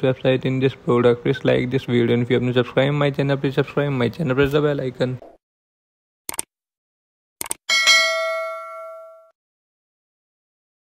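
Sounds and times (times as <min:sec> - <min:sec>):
notification bell ding: 0:07.7 - 0:09.4.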